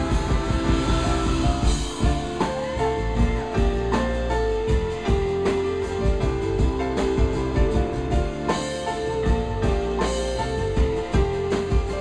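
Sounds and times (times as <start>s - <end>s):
live band playing: 0.0s - 12.0s
sharp drum hits: 0.0s - 12.0s.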